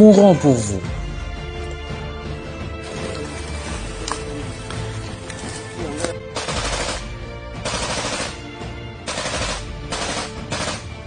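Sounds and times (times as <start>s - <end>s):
faint music: 0.0s - 11.0s
machine-gun fire bursts: 6.4s - 8.4s, 9.1s - 11.0s.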